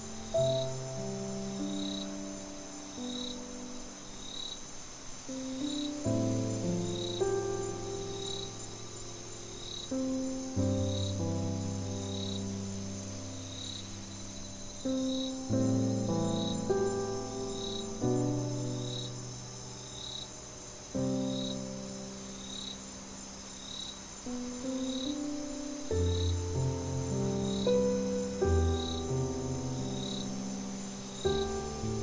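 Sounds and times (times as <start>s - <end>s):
crickets chirping: 0.0s - 32.0s
high background hiss: 0.0s - 32.0s
slow piano music: 0.0s - 32.0s.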